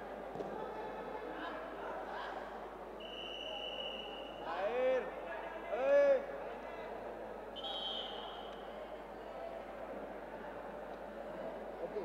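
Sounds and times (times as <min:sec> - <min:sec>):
indoor hall background noise: 0:00.0 - 0:12.0
referee's whistle long note: 0:03.0 - 0:04.4, 0:07.6 - 0:08.5.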